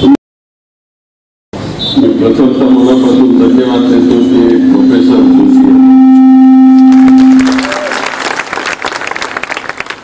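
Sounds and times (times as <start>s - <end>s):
steady low tone: 2.0s - 7.9s
crowd applauding: 6.8s - 10.0s.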